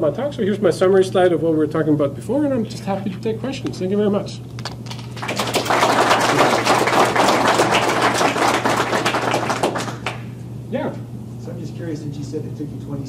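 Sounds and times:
audience applauding: 0:04.8 - 0:10.2.

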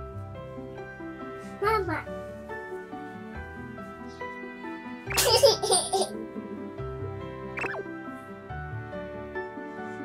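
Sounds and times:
soft background music: 0:00.0 - 0:10.0
loud burst of laughter: 0:05.2 - 0:06.1.

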